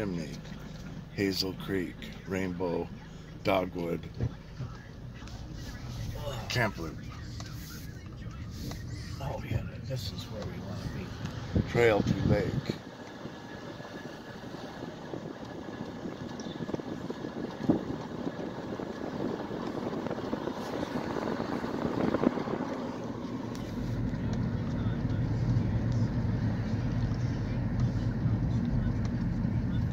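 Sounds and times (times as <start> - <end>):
car tyre and engine noise: 0.0 - 29.9
low engine hum: 0.0 - 29.9.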